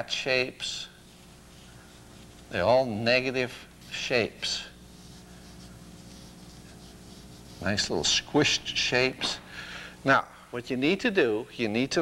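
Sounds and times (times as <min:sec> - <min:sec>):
steady low hum: 0:00.0 - 0:12.0
brush scratching on paper: 0:01.0 - 0:08.9.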